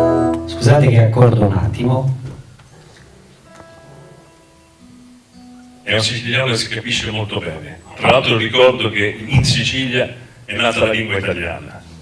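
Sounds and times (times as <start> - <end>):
acoustic guitar strings plucked: 0.0 - 0.9, 2.3 - 10.8.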